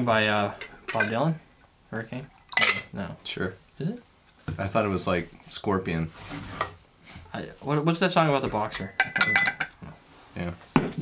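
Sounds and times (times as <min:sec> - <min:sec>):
barware clinking against glass: 0:00.6 - 0:01.2, 0:02.5 - 0:02.9, 0:08.8 - 0:09.8.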